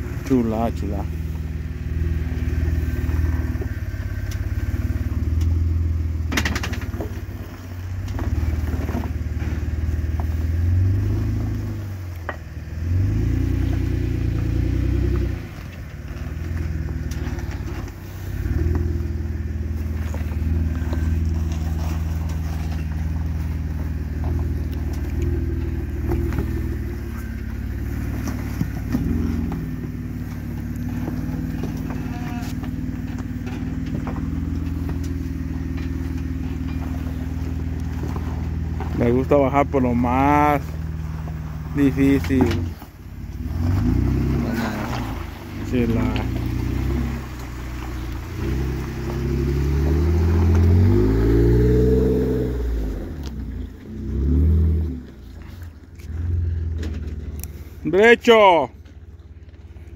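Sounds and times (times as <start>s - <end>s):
jeep engine crawling: 0.0s - 59.9s
knocks and scrapes on rock: 19.9s - 39.0s.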